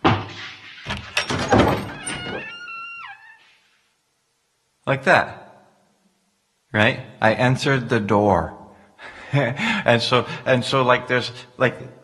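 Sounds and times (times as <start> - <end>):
squeaky hinge creak: 0.8 - 3.6
door thunks and rattles: 0.9 - 2.6.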